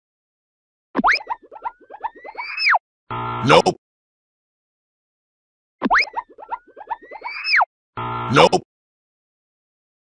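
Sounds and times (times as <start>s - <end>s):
cartoon upward swoop: 1.0s - 2.8s, 5.8s - 7.7s
cartoon whistle: 1.0s - 2.8s, 5.8s - 7.7s.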